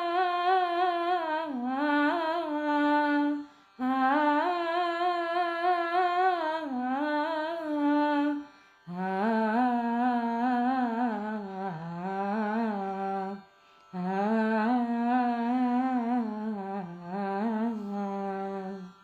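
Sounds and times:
person humming a melody: 0.0 - 19.0.

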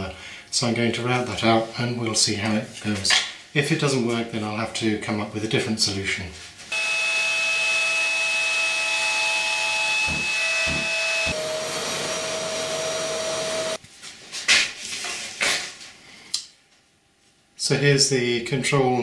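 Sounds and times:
router whining: 6.7 - 13.8
sharp knocks: 10.0 - 11.4.

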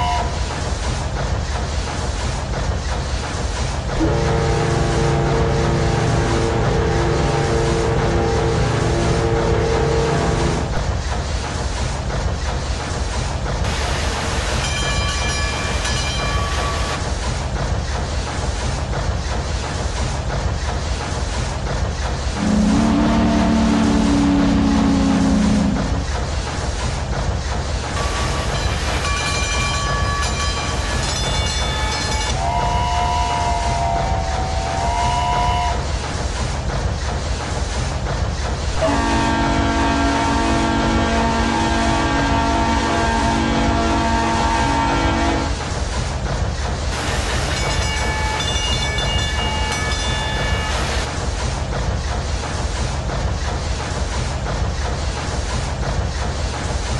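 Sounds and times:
high train whistles: 0.0 - 0.5, 4.0 - 10.8, 22.4 - 26.0, 28.0 - 36.1, 38.8 - 45.6
steam train chugging: 0.0 - 56.9
train horn chord: 4.0 - 10.4, 22.4 - 25.8, 38.8 - 45.5.

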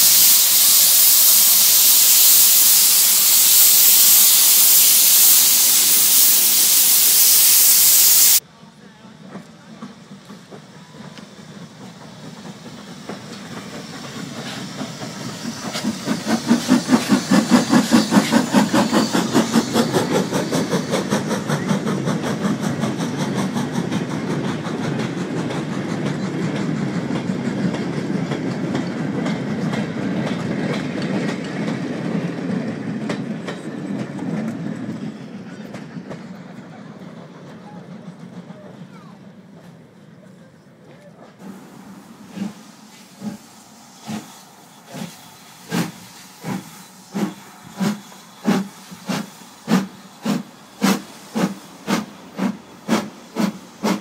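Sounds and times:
steam locomotive hissing steam: 0.0 - 54.0
train wheels clicking over rail joints: 9.2 - 40.2, 40.8 - 54.0.

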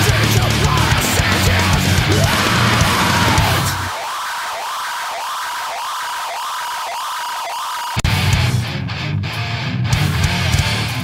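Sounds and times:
siren-like sound sweeping upward: 2.2 - 8.0.

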